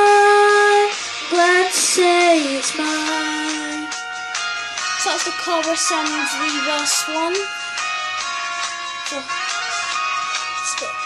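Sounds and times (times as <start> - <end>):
boy singing into a microphone: 0.0 - 3.9.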